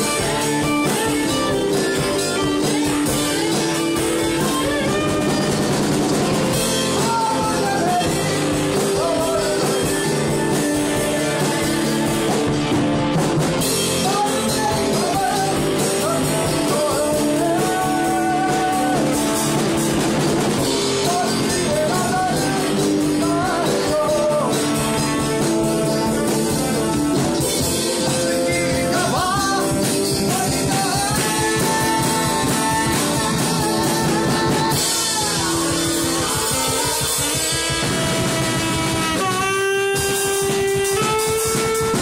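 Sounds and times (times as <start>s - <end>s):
rock band playing live: 0.0s - 42.0s.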